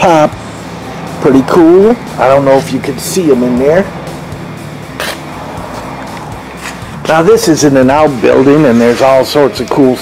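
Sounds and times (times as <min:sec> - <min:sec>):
background music held notes: 0:00.0 - 0:10.0.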